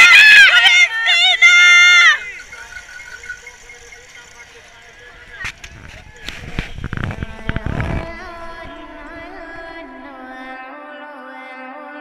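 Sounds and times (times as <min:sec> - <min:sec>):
crowd singing: 0:00.0 - 0:11.7
faint crowd noise: 0:00.0 - 0:12.0
wind rumbling on camera: 0:01.2 - 0:10.4.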